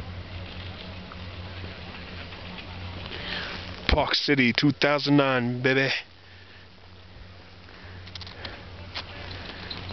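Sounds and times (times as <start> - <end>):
person breathing faintly: 3.1 - 3.8, 6.1 - 6.8, 7.6 - 9.9.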